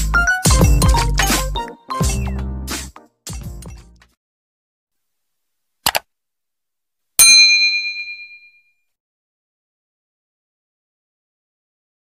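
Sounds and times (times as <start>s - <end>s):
double mouse click: 5.8s - 6.0s
bright bell ding: 7.2s - 8.7s.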